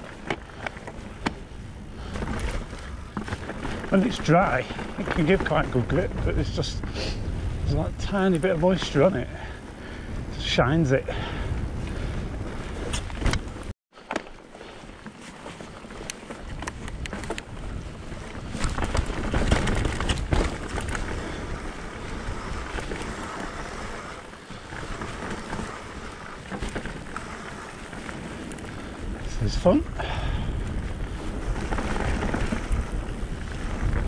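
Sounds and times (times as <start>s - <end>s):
wind buffeting microphone: 0.0s - 13.7s, 15.9s - 34.0s
bike clicks and rattles: 0.0s - 34.0s
bike rolling over grass: 0.0s - 34.0s.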